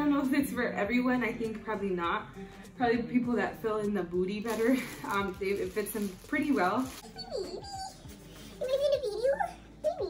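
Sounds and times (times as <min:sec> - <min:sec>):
dog whining: 0:07.0 - 0:08.3.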